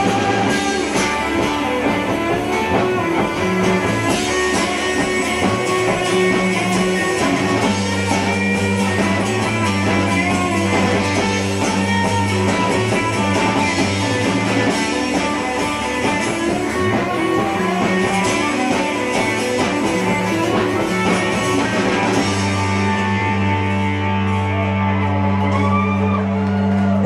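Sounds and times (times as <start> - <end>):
rock band playing live: 0.0 - 27.0.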